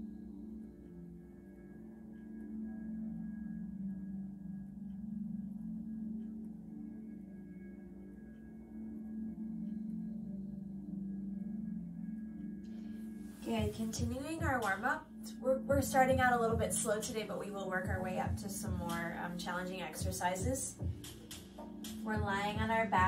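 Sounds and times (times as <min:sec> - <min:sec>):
soft ambient drone music: 0:00.0 - 0:23.0.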